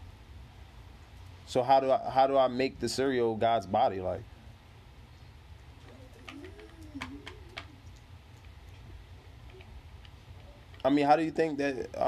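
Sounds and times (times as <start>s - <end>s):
faint humming voice: 1.5s - 12.0s.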